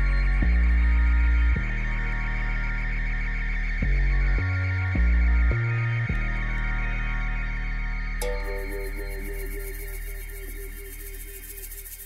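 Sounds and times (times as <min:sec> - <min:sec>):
high ticking texture: 0:08.2 - 0:12.0.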